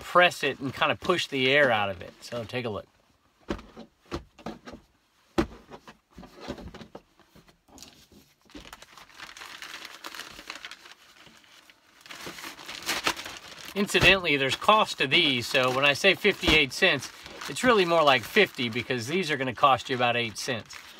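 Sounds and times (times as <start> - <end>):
plastic mailer bag crinkling: 7.8 - 20.9.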